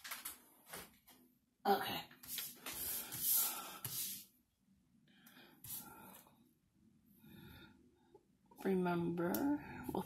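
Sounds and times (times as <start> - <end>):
paper rustling and sliding: 2.2 - 4.2.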